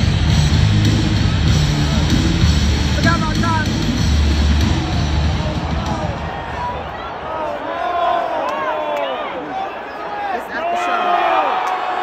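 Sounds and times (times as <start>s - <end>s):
loud music with heavy bass: 0.0s - 6.3s
crowd chatter: 0.0s - 12.0s.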